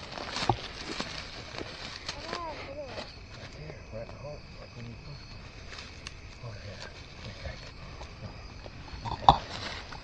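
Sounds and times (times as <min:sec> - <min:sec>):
dry stalks rustling: 0:00.0 - 0:10.0.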